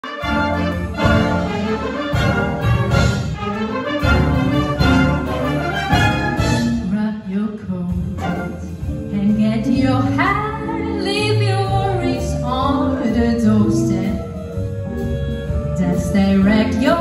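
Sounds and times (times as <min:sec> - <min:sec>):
wind band playing: 0:00.0 - 0:07.0, 0:07.9 - 0:17.0.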